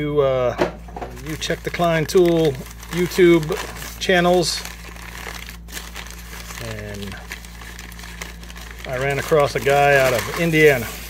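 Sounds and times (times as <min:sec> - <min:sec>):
packing paper crinkling: 0:01.0 - 0:11.0.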